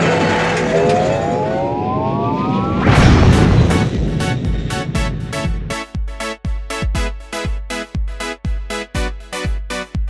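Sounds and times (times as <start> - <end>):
game engine revving whine: 0.0 - 5.8.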